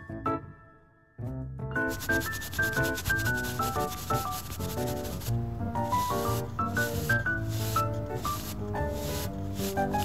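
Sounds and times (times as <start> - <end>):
background music: 0.0 - 10.0
brush rubbing on eyeshadow palette: 1.8 - 10.0.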